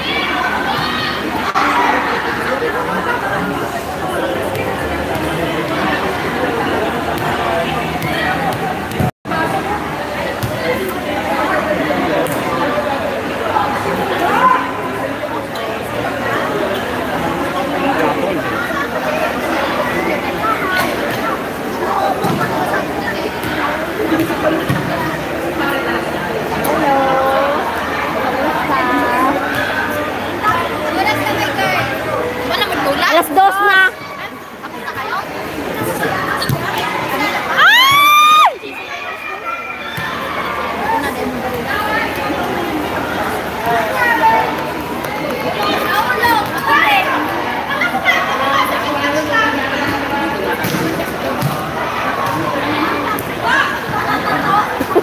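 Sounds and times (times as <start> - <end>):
murmur of voices: 0.0 - 55.0
people chatting in echoing hall: 0.0 - 55.0.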